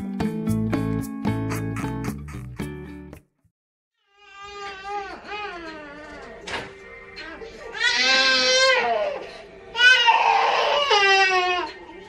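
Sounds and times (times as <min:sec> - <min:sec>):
baby crying: 0:04.0 - 0:06.3, 0:07.2 - 0:12.0.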